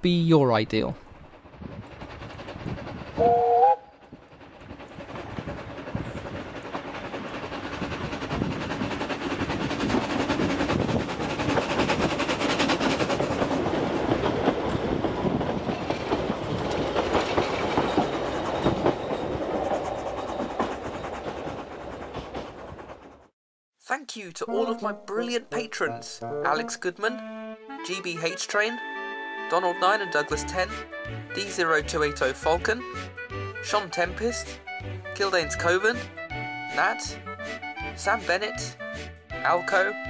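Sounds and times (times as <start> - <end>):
steam locomotive exhaust: 0.9 - 23.3
steam locomotive two-note whistle: 3.2 - 4.0.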